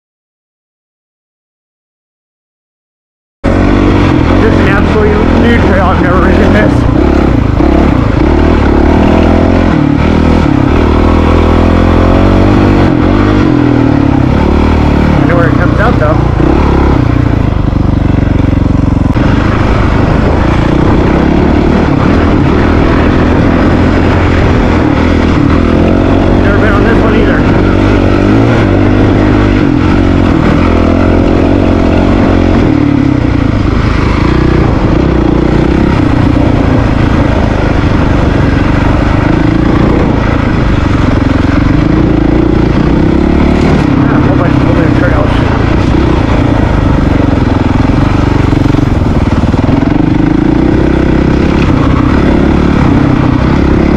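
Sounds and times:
motorcycle engine revving: 0:03.4 - 0:53.9.

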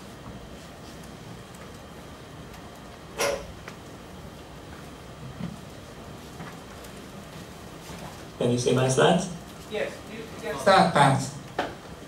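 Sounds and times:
low room tone hiss: 0:00.0 - 0:12.0.

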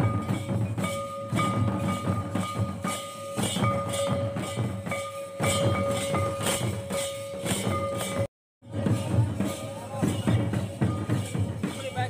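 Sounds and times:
drums beating a steady rhythm: 0:00.0 - 0:12.0.

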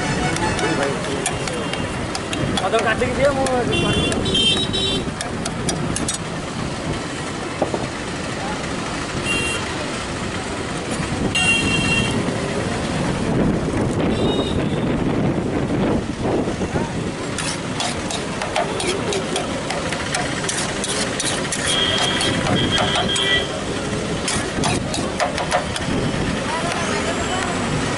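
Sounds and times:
car horn toots: 0:00.0 - 0:01.9, 0:03.6 - 0:05.1, 0:11.3 - 0:12.2, 0:21.6 - 0:23.6
traffic: 0:00.0 - 0:27.9
background chatter: 0:16.5 - 0:27.9
metal utensil scraping metal pan: 0:17.4 - 0:22.5, 0:24.2 - 0:25.2.

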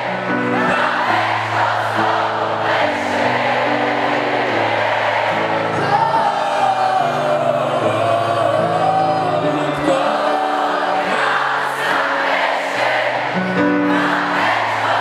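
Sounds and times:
crowd singing along: 0:00.0 - 0:15.0.

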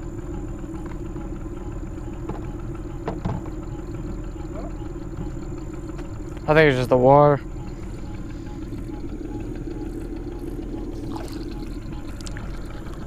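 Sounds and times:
boat motor idling: 0:00.0 - 0:13.0.

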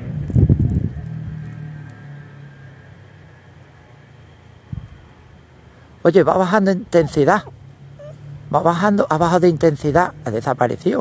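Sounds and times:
distant motorbike engine: 0:06.2 - 0:11.0.

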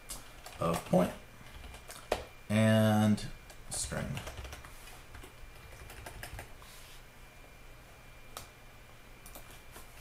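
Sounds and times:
keyboard typing: 0:00.1 - 0:02.3, 0:03.5 - 0:06.5.

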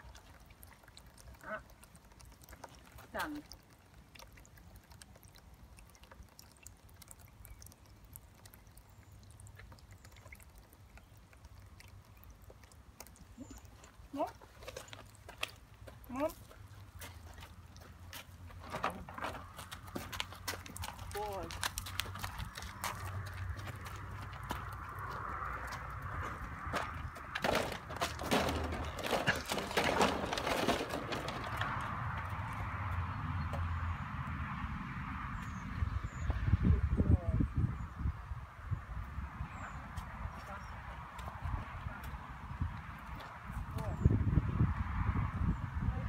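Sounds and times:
horse hooves on gravel: 0:12.4 - 0:33.7
footsteps on gravel: 0:14.3 - 0:31.9
wind rumble on microphone: 0:31.2 - 0:46.0.

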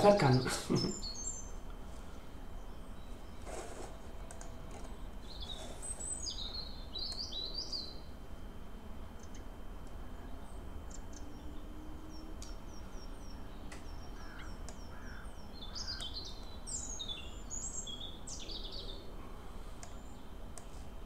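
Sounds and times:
bird chirping: 0:00.0 - 0:01.6, 0:02.3 - 0:03.7, 0:04.8 - 0:08.1, 0:10.2 - 0:19.1
low background rumble: 0:00.0 - 0:21.0.

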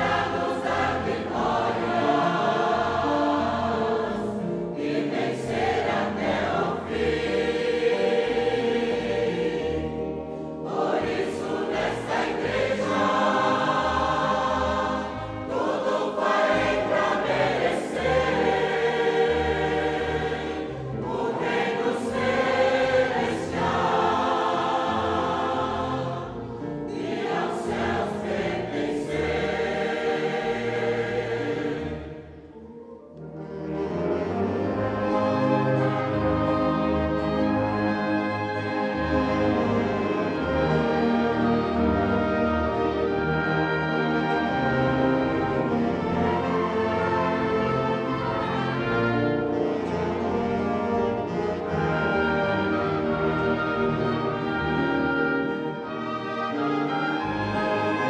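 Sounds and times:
choir singing a hymn: 0:00.0 - 0:32.7, 0:33.4 - 0:58.0.

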